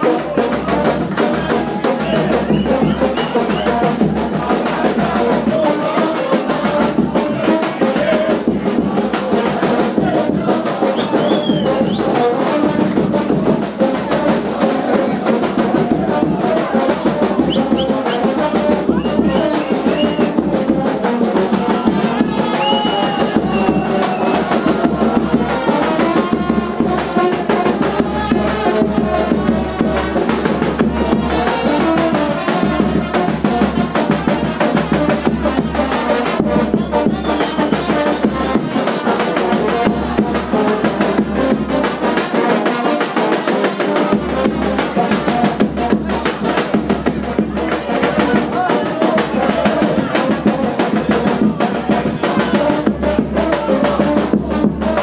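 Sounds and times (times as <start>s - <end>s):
bass drum beat: 0.0s - 42.2s, 44.0s - 55.0s
brass band playing dance music: 0.0s - 55.0s.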